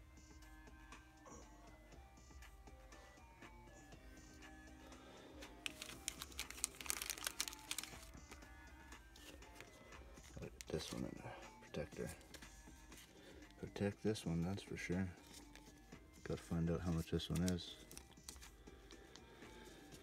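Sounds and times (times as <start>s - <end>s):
quiet background music: 0.0s - 20.0s
plastic card protector crinkling: 5.6s - 8.5s, 9.1s - 11.1s, 16.9s - 19.0s.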